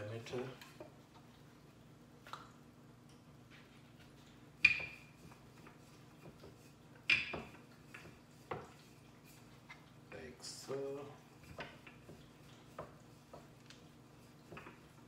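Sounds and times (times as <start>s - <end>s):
faint steady hum: 0.0s - 15.0s
rolling pin knocking on glass stove: 6.2s - 8.7s.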